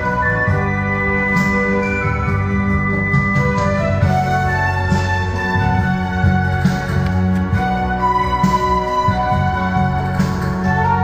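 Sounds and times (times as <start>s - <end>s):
instrumental ballad backing track: 0.0s - 11.0s.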